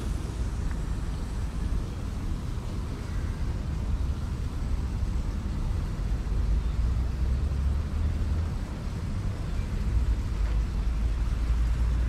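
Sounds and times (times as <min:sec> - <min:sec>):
faint outdoor hiss: 0:00.0 - 0:12.0
steady low rumble: 0:00.0 - 0:12.0.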